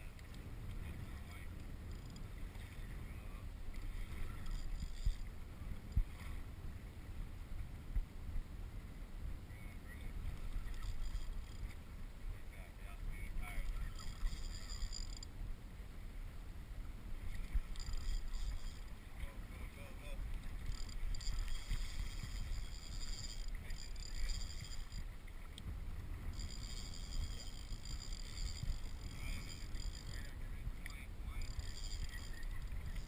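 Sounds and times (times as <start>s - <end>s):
choppy water against kayak: 0.0s - 33.0s
wind: 0.0s - 33.0s.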